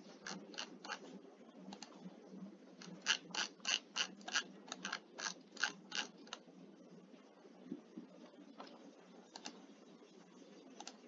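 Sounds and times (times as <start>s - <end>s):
low steady hiss: 0.0s - 11.0s
computer mouse clicking: 0.2s - 1.0s, 1.7s - 2.0s, 2.8s - 6.4s, 8.6s - 9.6s, 10.8s - 11.0s.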